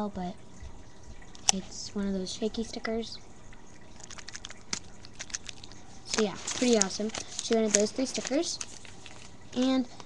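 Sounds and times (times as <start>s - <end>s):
sticker sheet crackling: 4.0s - 9.8s.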